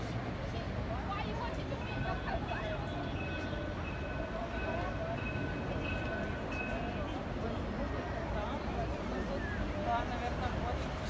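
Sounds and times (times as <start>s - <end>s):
faint voices: 0.0s - 11.0s
low rumble of traffic: 0.0s - 11.0s.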